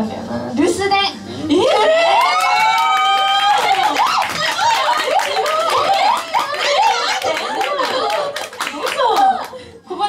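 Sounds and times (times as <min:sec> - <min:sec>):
hand clapping: 0:02.2 - 0:09.6.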